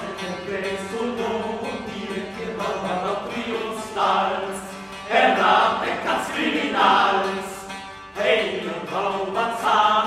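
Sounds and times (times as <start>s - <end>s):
voices singing slow chant-like melody: 0.0s - 10.0s.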